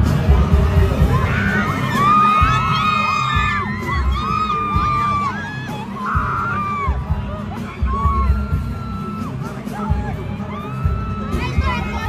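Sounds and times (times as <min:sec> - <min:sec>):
crowd singing and shrieking: 0:00.0 - 0:12.0
live concert music with heavy bass: 0:00.0 - 0:12.0.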